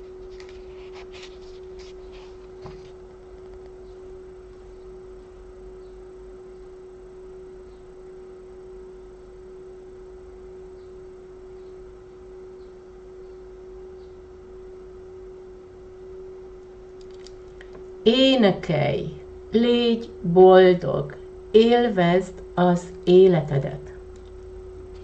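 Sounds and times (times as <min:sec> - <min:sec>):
steady pure tone: 0:00.0 - 0:25.0.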